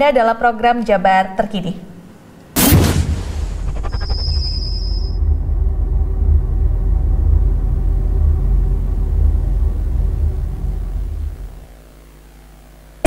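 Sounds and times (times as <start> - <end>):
deep bass drone: 2.6 - 11.8.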